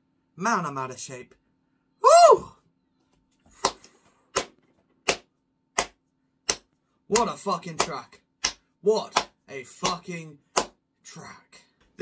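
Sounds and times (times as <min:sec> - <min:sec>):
person clapping slowly: 0:03.6 - 0:10.8.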